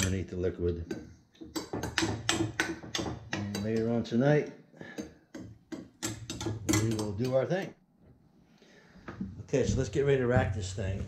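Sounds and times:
utensil tapping inside glass jar: 0:00.0 - 0:04.0, 0:04.9 - 0:07.4.

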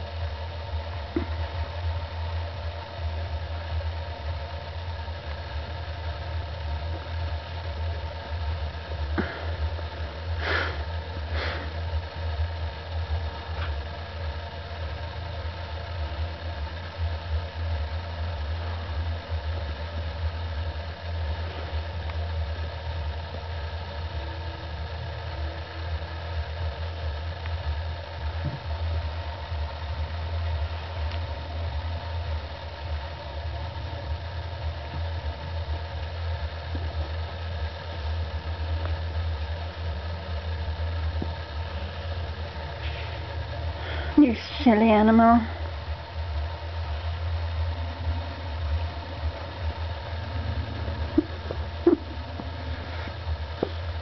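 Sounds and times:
steady low hum with tones: 0:00.0 - 0:54.0.

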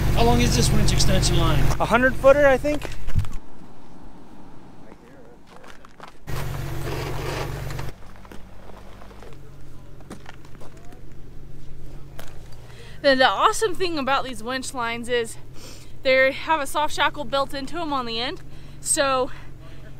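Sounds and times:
vehicle engine idling: 0:00.0 - 0:19.9
footsteps on snowy ground: 0:04.9 - 0:12.8.

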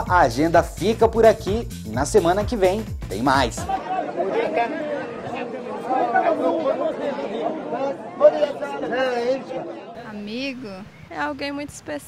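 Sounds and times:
overlapping voices chattering: 0:03.6 - 0:12.0.

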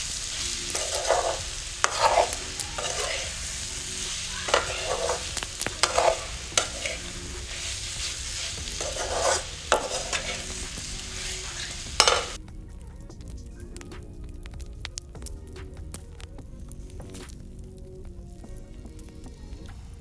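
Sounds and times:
food sizzling in a pot: 0:00.0 - 0:12.4
ladle scraping a pot: 0:00.0 - 0:12.4.

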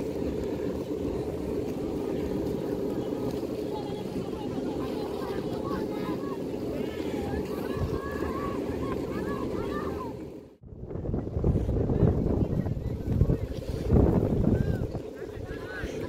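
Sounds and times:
wind buffeting microphone: 0:00.0 - 0:16.0
people shouting and calling: 0:02.4 - 0:10.4.

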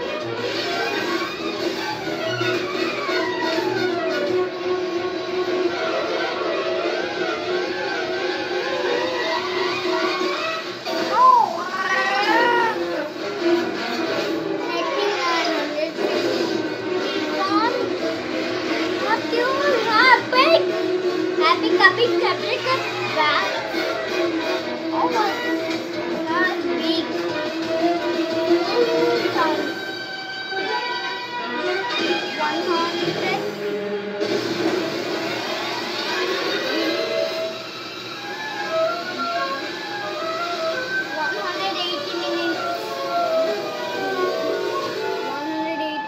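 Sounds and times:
cartoon background music: 0:00.0 - 0:46.0
cartoon character gliding calls: 0:10.9 - 0:12.8.

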